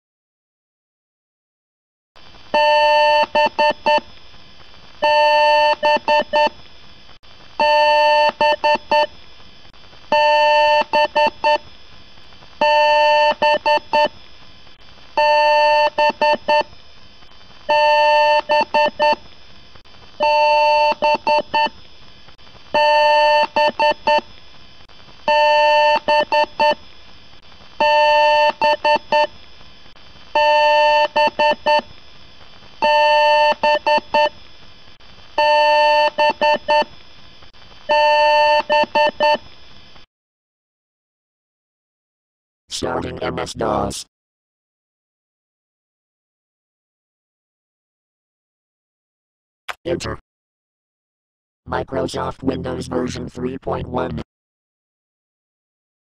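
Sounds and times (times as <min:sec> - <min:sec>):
electronic beeping bursts: 0:02.6 - 0:04.0, 0:05.0 - 0:06.5, 0:07.6 - 0:09.1, 0:10.1 - 0:11.6, 0:12.6 - 0:14.2, 0:15.2 - 0:16.7, 0:17.7 - 0:19.2, 0:20.2 - 0:21.7, 0:22.7 - 0:24.2, 0:25.3 - 0:26.8, 0:27.8 - 0:29.3, 0:30.4 - 0:31.8, 0:32.8 - 0:34.3, 0:35.4 - 0:36.9, 0:37.9 - 0:39.4.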